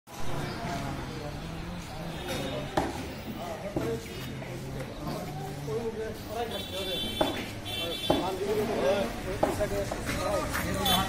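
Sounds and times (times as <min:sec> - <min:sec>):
voices talking: 0:00.1 - 0:11.0
sharp knocks: 0:02.7 - 0:03.1, 0:07.1 - 0:08.4, 0:09.4 - 0:10.0.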